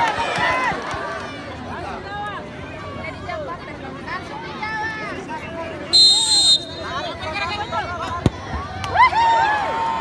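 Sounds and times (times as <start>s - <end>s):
football kicked thud: 8.2s - 8.7s.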